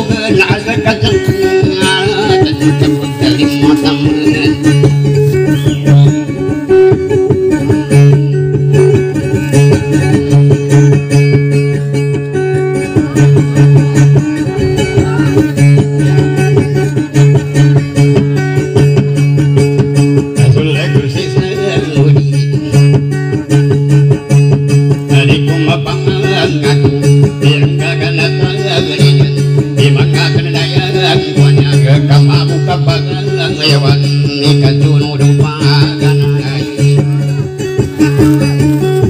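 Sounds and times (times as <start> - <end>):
acoustic guitar strumming: 0.0 - 39.0
plucked long-necked string instrument: 0.0 - 39.0.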